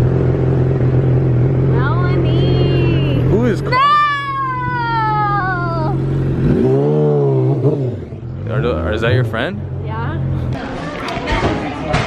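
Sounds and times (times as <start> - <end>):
car engine idling: 0.0 - 10.6.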